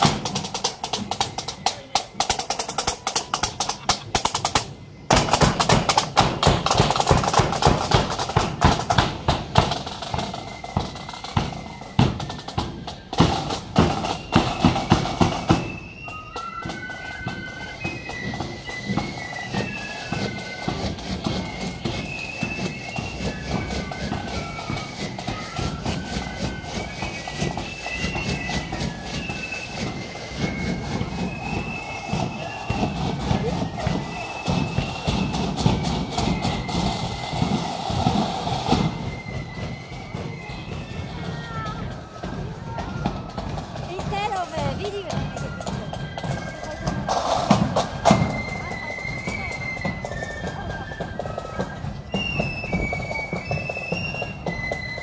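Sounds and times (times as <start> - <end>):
distant flute melody: 0.0 - 55.0
low street rumble: 0.0 - 55.0
marching snare and bass drums: 0.0 - 55.0.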